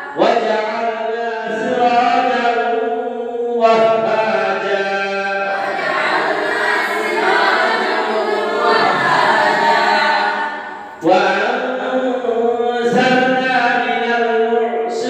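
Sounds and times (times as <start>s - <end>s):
single voice reciting chant: 0.0s - 15.0s
group of boys chanting in unison: 3.6s - 13.4s.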